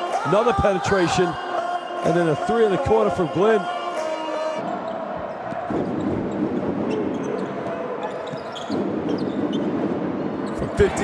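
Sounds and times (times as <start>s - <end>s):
crowd din: 1.3s - 11.0s
basketball bouncing on court: 5.2s - 10.1s.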